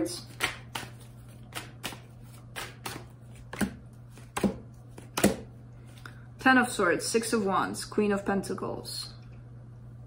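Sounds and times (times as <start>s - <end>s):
cards being shuffled: 0.2s - 6.0s.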